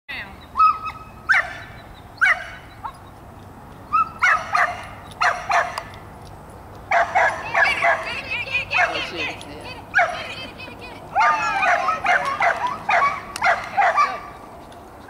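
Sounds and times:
small dog yipping: 0.6s - 3.1s, 3.9s - 5.9s, 6.9s - 8.1s, 8.7s - 9.2s, 11.2s - 14.4s.

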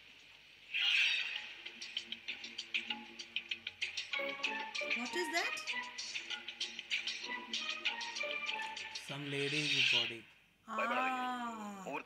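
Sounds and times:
drawn-out voiced exclamation: 10.7s - 12.0s.

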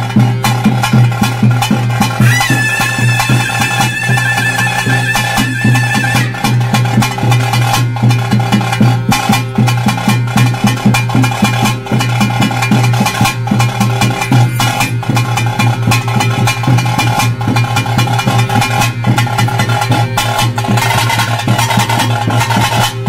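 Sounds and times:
steady held tones: 0.0s - 8.6s
fast dense drumming: 0.0s - 23.0s.

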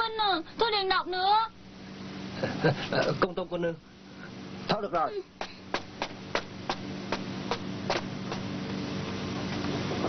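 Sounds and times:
low steady hum: 0.0s - 10.0s
evenly spaced sharp knocks: 5.4s - 8.4s.

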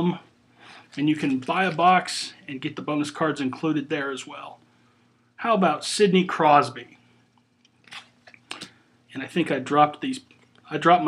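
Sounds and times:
trading cards crinkling: 0.7s - 2.3s, 7.7s - 8.7s.

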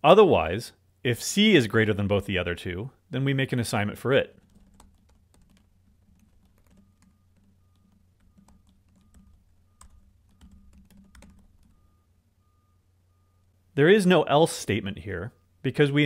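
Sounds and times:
low steady hum: 0.0s - 16.0s
keyboard typing clicks: 4.4s - 11.7s.

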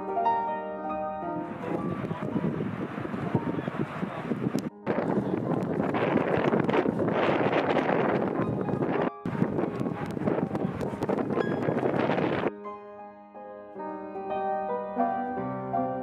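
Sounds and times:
loud uneven rushing noise: 1.4s - 12.5s.

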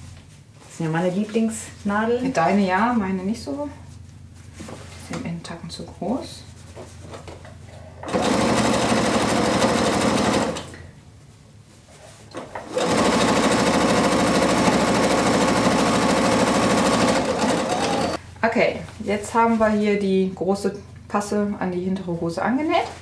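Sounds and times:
sewing machine stitching: 8.0s - 10.8s, 12.4s - 18.2s.

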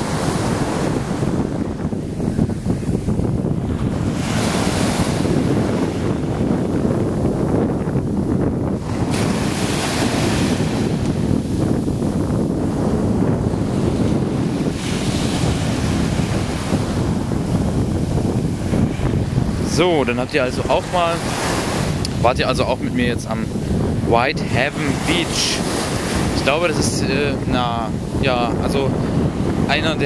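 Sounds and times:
small waves washing on sand: 0.0s - 30.0s
wind buffeting microphone: 0.0s - 30.0s.

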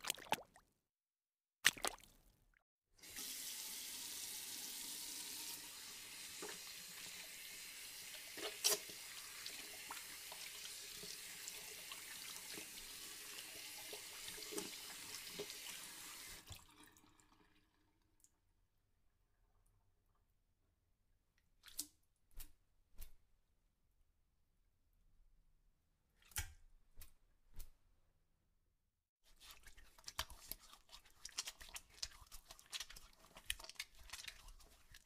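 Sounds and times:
water pouring into water: 0.0s - 0.6s, 8.5s - 17.8s.

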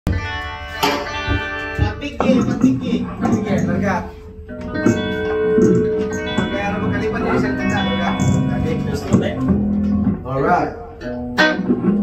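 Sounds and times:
electric guitar chord ringing: 0.1s - 10.2s
low thumps: 1.0s - 10.5s.

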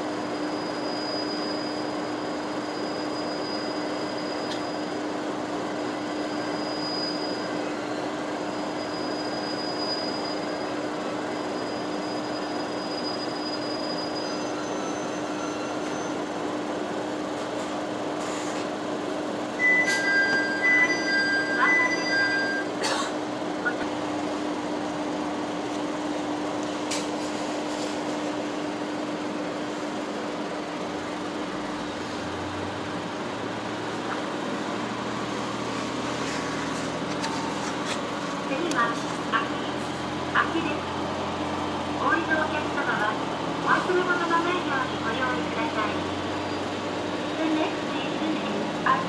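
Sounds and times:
train brakes squealing: 0.0s - 5.2s, 5.8s - 16.4s, 19.6s - 22.8s, 46.4s - 46.8s
diesel railcar running hum: 0.0s - 49.0s.

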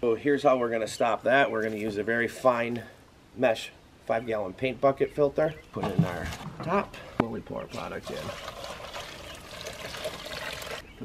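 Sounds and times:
liquid pouring into plastic tank: 8.0s - 10.8s.

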